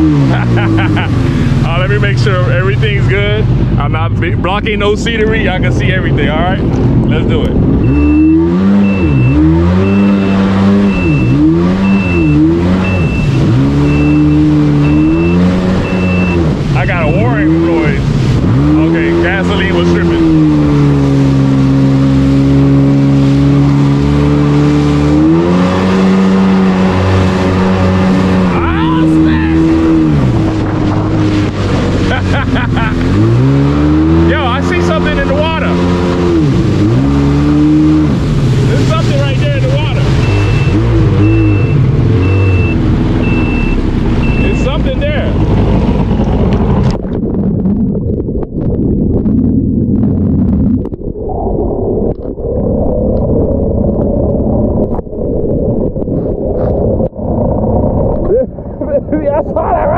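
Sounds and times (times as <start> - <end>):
jet ski engine revving: 0.0 - 47.1
high beep: 7.8 - 16.5, 40.2 - 44.8.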